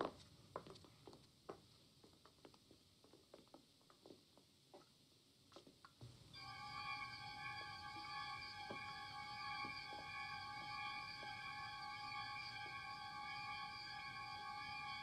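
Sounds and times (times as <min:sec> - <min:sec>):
eerie sustained high chord: 0:06.4 - 0:15.0.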